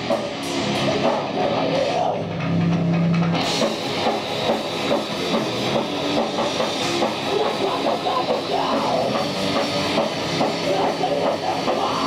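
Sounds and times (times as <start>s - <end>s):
live heavy metal band: 0.0s - 12.0s.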